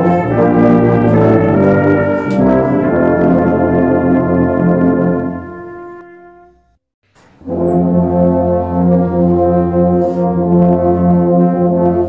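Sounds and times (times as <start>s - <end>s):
brass ensemble playing a hymn: 0.0s - 6.6s, 7.4s - 12.0s.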